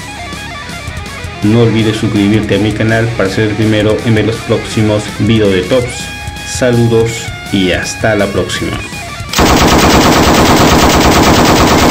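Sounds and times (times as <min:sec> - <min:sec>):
rapid machine-gun fire: 0:09.4 - 0:11.9.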